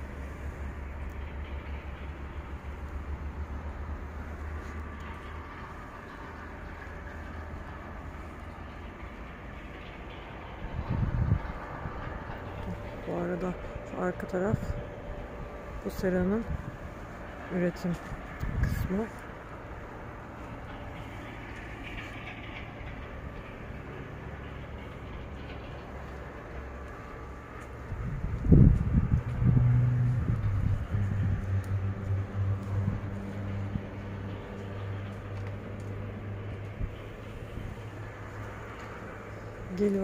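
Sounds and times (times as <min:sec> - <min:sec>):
low mechanical hum: 0:00.0 - 0:40.0
loud low rumble: 0:10.3 - 0:40.0.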